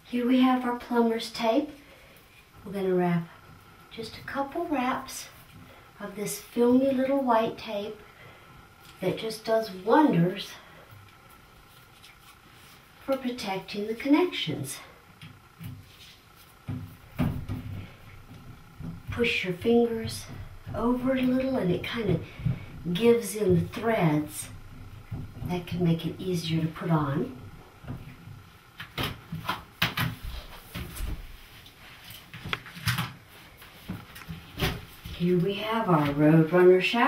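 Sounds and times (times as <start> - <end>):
soft handling sounds: 11.0 - 13.1
low handling rumbles: 16.6 - 28.7.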